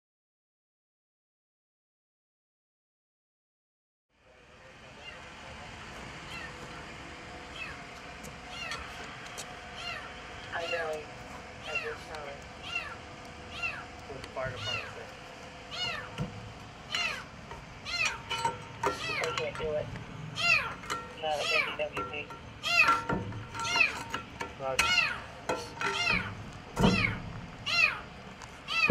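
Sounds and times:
kitten meowing: 6.3 - 6.6, 7.5 - 7.8, 8.5 - 9.0, 9.8 - 11.0, 11.6 - 13.9, 14.5 - 15.0, 15.7 - 16.2, 16.9 - 18.3, 20.4 - 22.0, 22.6 - 24.0, 24.8 - 28.0, 28.7 - 28.9.

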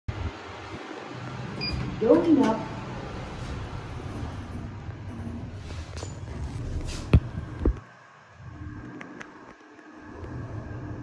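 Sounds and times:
lift hum: 0.1 - 11.0.

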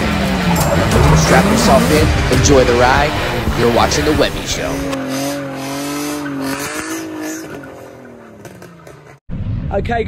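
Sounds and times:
car engine at high revs: 0.0 - 9.2
tyres spinning and squealing: 0.0 - 9.2.

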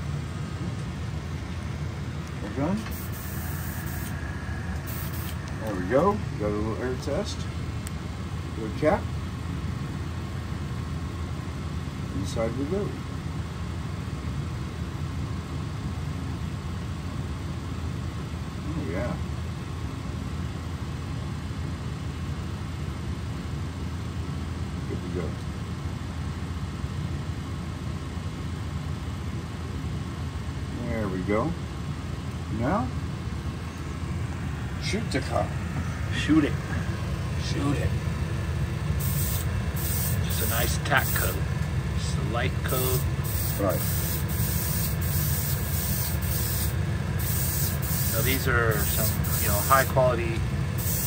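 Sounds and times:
motor humming: 0.0 - 6.2, 33.7 - 49.9
airbrush spraying hiss: 2.9 - 4.2, 4.8 - 5.4, 39.0 - 41.4, 42.6 - 50.0, 50.8 - 51.0.

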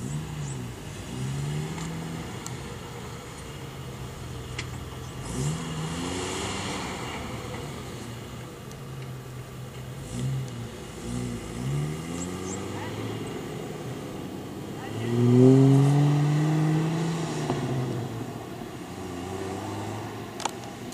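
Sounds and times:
car engine revving: 0.0 - 20.9.

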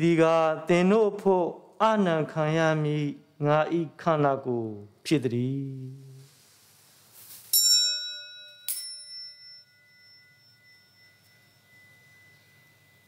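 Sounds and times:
altar bell ringing: 7.5 - 13.0.

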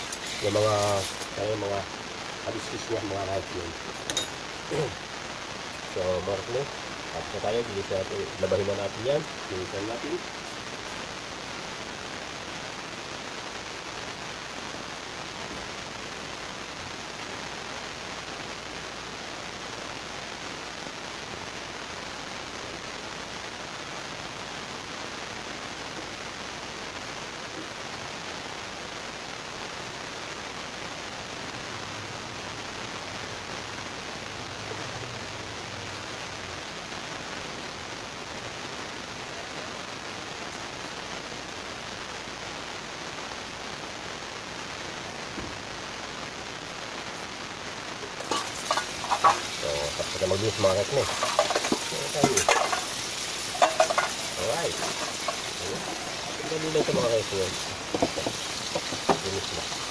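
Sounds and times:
steady even hiss: 0.0 - 59.9.

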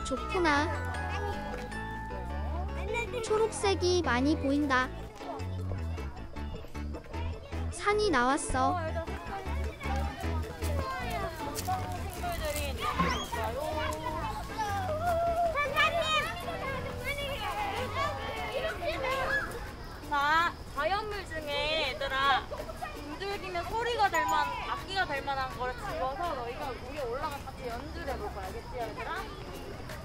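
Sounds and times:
young children chattering: 0.0 - 30.0.

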